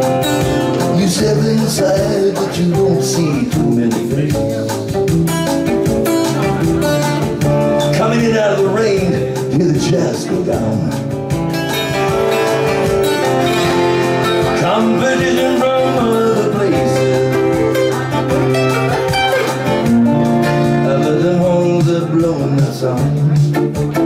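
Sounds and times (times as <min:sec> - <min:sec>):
twelve-string acoustic guitar: 0:00.0 - 0:24.0.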